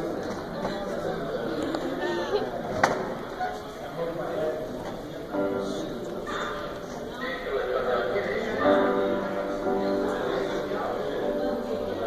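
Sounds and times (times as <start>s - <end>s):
sustained piano chords: 5.2s - 12.0s.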